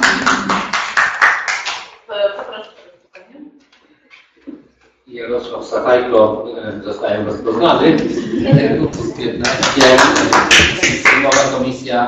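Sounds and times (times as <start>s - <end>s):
audience applauding: 0.0s - 1.9s, 9.2s - 11.6s.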